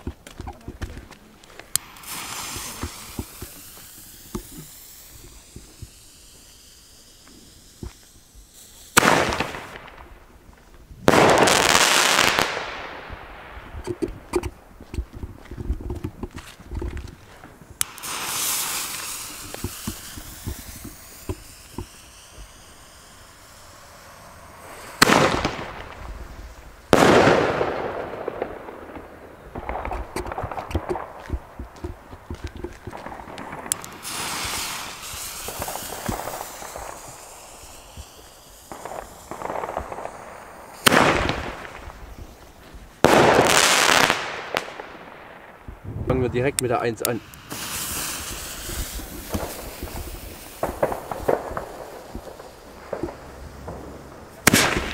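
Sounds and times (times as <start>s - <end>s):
firework shells banging: 0.0s - 54.9s.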